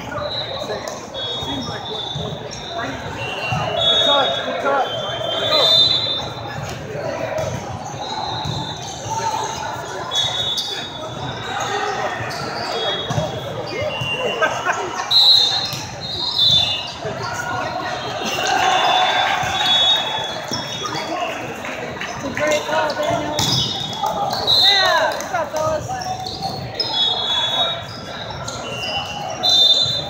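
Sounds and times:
mix of voices: 0.0s - 29.5s
sneakers squeaking on court: 0.1s - 14.5s, 22.0s - 30.0s
loud shouts: 16.6s - 21.6s
volleyball struck and bouncing: 23.2s - 23.9s.

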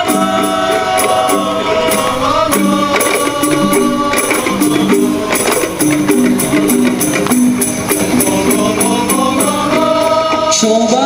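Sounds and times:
frame drums with jingles: 0.0s - 11.0s
group singing: 0.0s - 11.0s.

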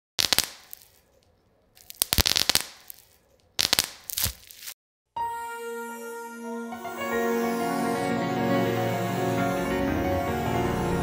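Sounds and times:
light bulb crackling: 0.2s - 4.8s.

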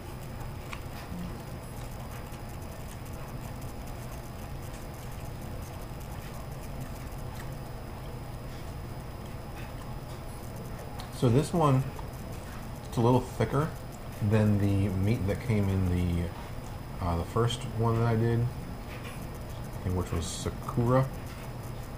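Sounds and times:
person chewing: 0.0s - 11.1s
low room hum: 0.0s - 21.9s.

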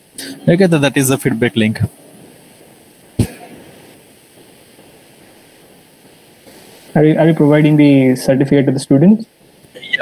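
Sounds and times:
low microphone hiss: 0.0s - 10.0s.

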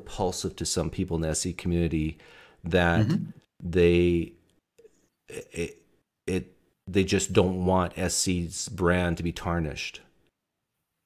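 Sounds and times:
person speaking: 2.7s - 4.3s.

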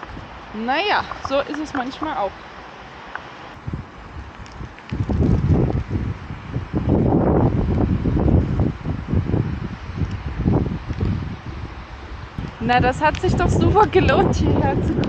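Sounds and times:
gusty wind buffeting microphone: 0.0s - 15.0s.

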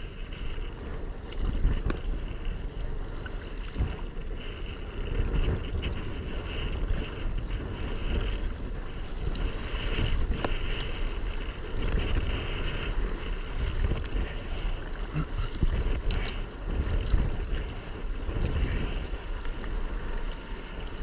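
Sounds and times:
water splashing around kayak: 0.0s - 21.0s
wind buffeting microphone: 0.0s - 21.0s.

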